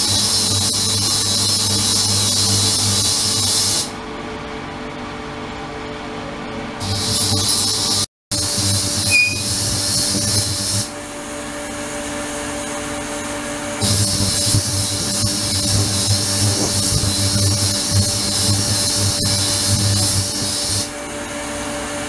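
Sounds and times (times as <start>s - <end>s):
loud high ultrasonic hiss: 6.8s - 11.0s, 13.8s - 21.0s.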